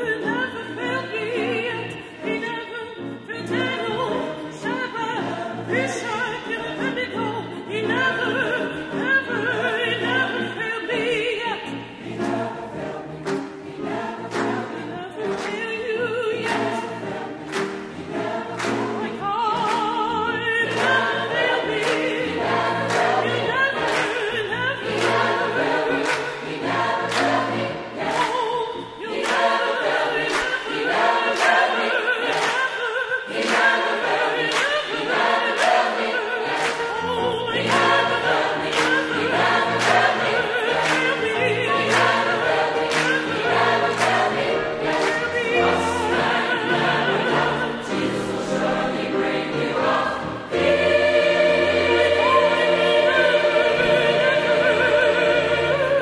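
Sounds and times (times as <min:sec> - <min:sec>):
choir singing gospel: 0:00.0 - 0:56.0
piano: 0:00.0 - 0:56.0.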